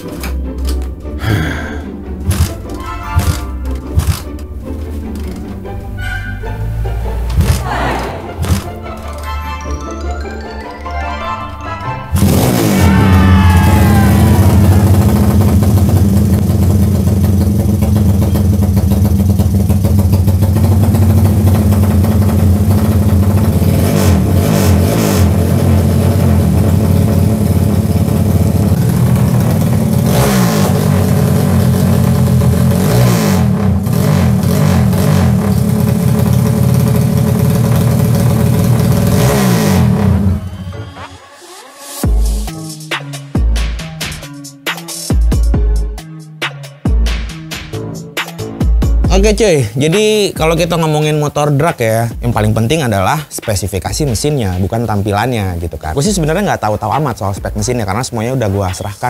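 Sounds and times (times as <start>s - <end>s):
motorcycle kick start: 2.3s - 4.4s
motorcycle engine revving: 12.1s - 40.7s.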